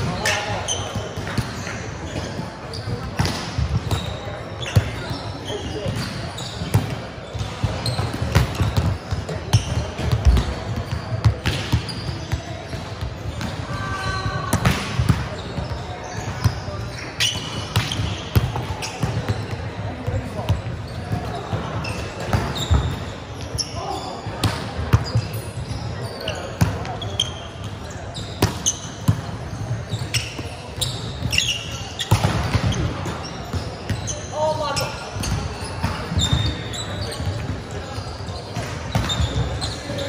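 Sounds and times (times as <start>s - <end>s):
volleyballs slapping and bouncing: 0.0s - 23.1s, 23.8s - 37.7s, 38.4s - 40.0s
players' voices: 0.0s - 40.0s.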